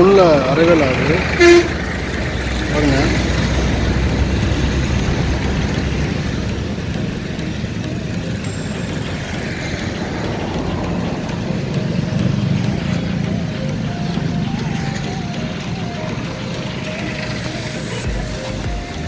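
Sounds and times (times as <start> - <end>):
distant voices: 0.0 - 19.0
low engine rumble: 0.0 - 19.0.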